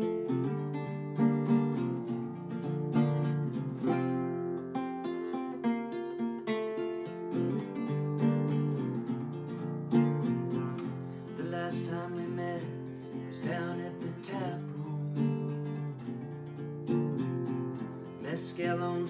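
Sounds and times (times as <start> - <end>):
acoustic guitar playing: 0.0 - 19.0.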